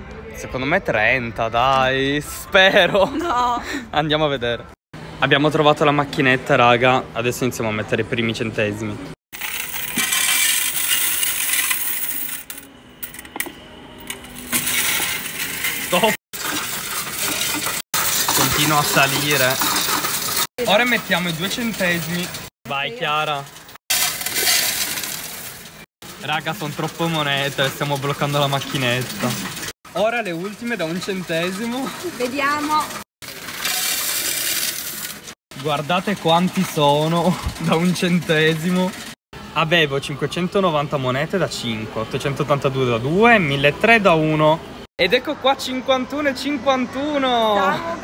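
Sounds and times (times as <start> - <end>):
coins jingling into metal tray: 9.4 - 20.4
coins clattering in counting machine: 9.4 - 22.4, 23.9 - 39.2.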